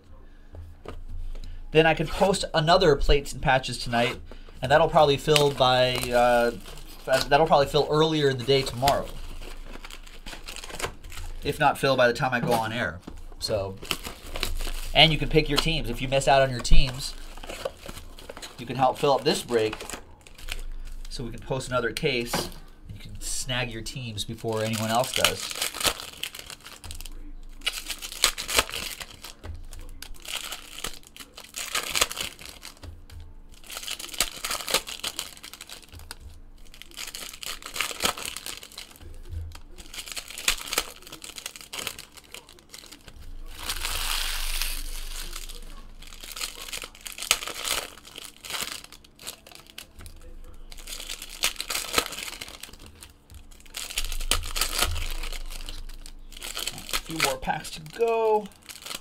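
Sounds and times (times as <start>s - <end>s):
wrappers tearing and crinkling: 0.8s - 59.0s.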